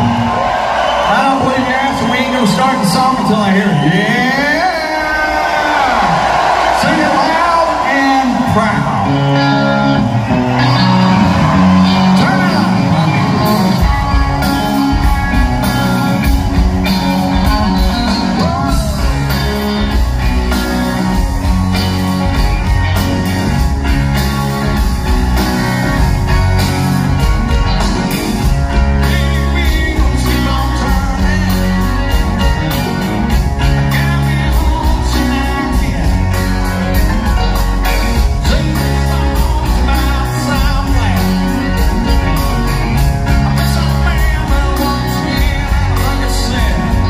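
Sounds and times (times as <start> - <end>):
rock band playing: 0.0 - 47.0
bass and drums: 8.3 - 47.0
electric guitar intro: 8.3 - 47.0.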